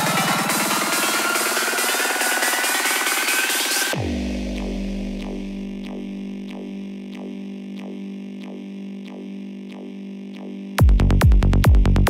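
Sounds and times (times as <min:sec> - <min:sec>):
synth drone: 0:00.0 - 0:10.8.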